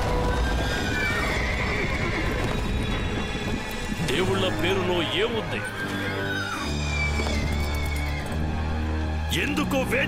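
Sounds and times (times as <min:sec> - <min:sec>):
horses whinnying: 0:00.0 - 0:04.0, 0:05.3 - 0:08.4
background music: 0:00.0 - 0:10.0.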